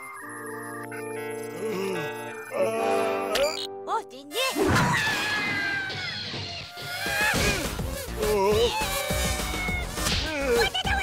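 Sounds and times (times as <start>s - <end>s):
cartoon music: 0.0s - 7.6s, 8.2s - 11.0s.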